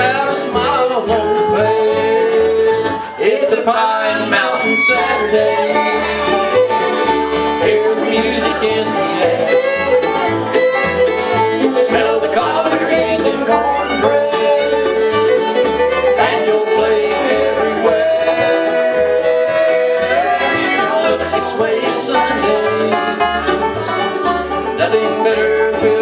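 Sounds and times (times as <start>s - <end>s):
acoustic guitar: 0.0s - 26.0s
alternating bass line: 0.0s - 26.0s
banjo: 0.0s - 26.0s
fiddle: 0.0s - 26.0s
mandolin: 0.0s - 26.0s.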